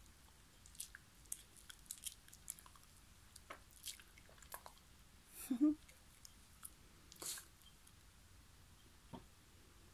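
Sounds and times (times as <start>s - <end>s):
dog licking and smacking lips: 0.6s - 4.9s.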